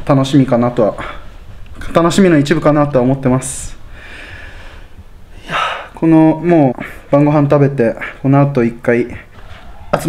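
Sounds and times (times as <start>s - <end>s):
man breathing close to microphone: 3.8s - 6.0s.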